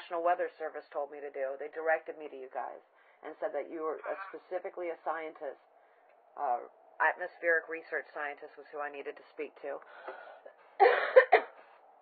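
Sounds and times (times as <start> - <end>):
person coughing over telephone: 10.1 - 11.6.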